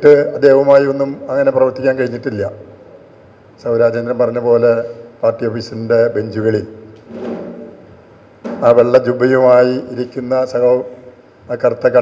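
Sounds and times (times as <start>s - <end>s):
man speaking into a microphone: 0.0s - 2.7s, 3.6s - 6.8s, 8.5s - 12.0s.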